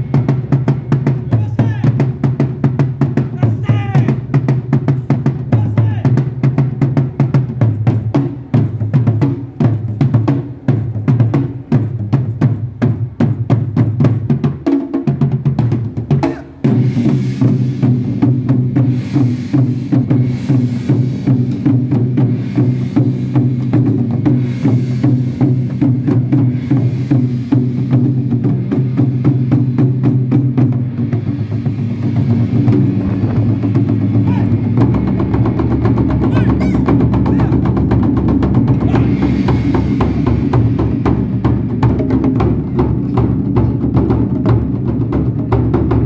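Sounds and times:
taiko drums beaten with sticks: 0.0s - 46.0s.

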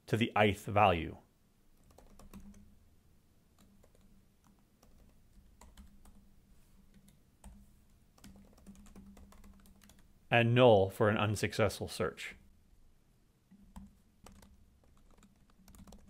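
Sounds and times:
typing on computer keyboard: 1.8s - 2.7s, 3.6s - 6.2s, 8.2s - 10.1s, 13.5s - 16.0s.

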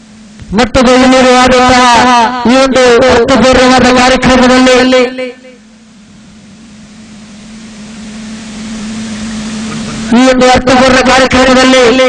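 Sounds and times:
low even hum: 0.0s - 12.0s
microphone hiss: 0.0s - 12.0s.

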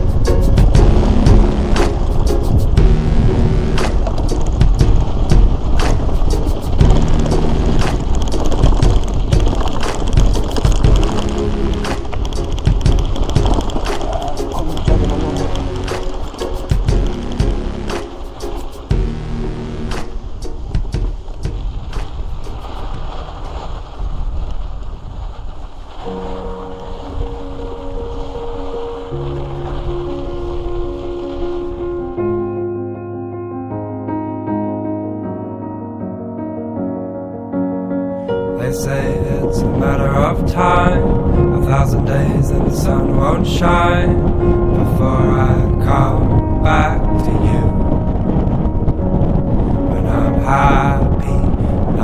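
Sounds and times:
bike rolling over gravel: 0.0s - 19.1s, 19.9s - 32.2s, 38.9s - 52.0s
keyboard chords: 0.0s - 22.2s, 26.1s - 52.0s
piano notes: 0.0s - 23.6s, 26.0s - 52.0s
bike rattling over bumps: 0.0s - 31.8s
wind on microphone: 0.0s - 32.2s, 38.4s - 52.0s.

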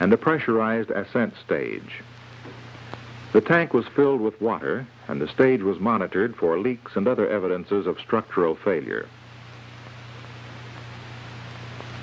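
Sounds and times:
film soundtrack hiss: 0.0s - 12.0s
low constant hum: 0.0s - 12.0s.

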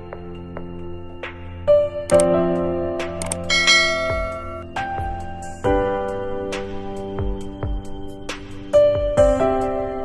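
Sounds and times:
instrumental background music: 0.0s - 10.0s
bell-like chimes: 3.5s - 4.7s.

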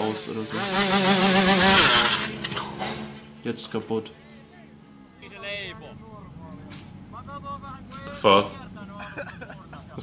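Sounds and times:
dirt bike engine at full revs: 0.0s - 3.3s.

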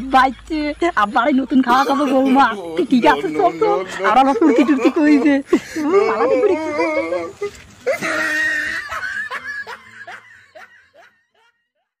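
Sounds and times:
high-pitched laughter: 1.7s - 12.0s.

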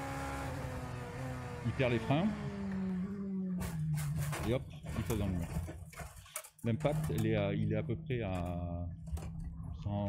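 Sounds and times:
race car engine: 0.0s - 7.7s.

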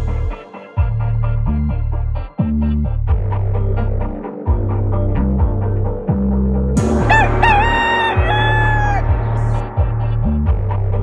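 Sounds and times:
hip-hop beat with deep bass: 0.0s - 11.0s
rooster crowing: 7.0s - 9.6s.

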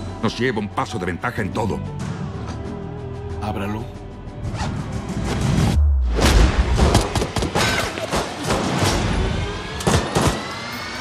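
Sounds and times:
music with rising tone: 1.7s - 7.0s
gunshots and hard hits: 9.8s - 10.6s.

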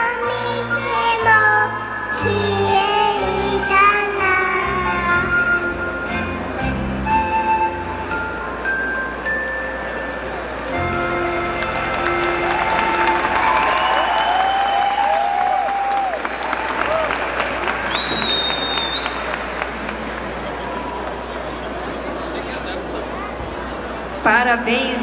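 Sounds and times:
children's song backing music: 0.0s - 10.3s
audience applause: 9.1s - 22.7s
audience cheering: 11.6s - 21.8s.

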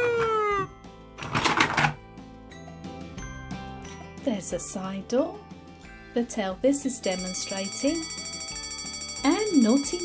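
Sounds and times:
toy fire engine siren wailing: 0.0s - 0.7s
quiet background music: 0.0s - 10.0s.

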